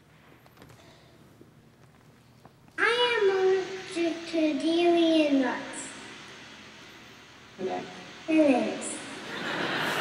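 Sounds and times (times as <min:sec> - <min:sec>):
boy reading aloud sing-song: 0:02.8 - 0:06.2, 0:07.6 - 0:09.1.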